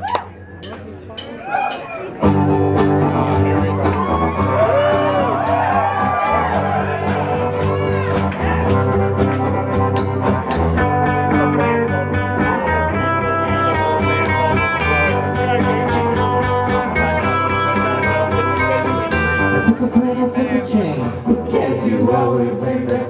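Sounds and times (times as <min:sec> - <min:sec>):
rock band playing live: 0:02.2 - 0:21.6.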